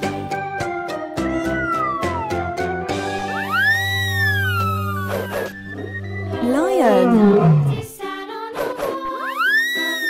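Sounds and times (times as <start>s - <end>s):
background music: 0.0s - 10.0s
lion roaring: 6.4s - 7.9s.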